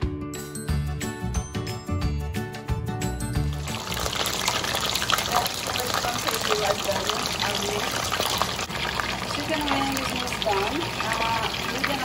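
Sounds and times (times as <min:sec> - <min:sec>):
food deep-frying in sizzling oil: 0:03.3 - 0:12.0.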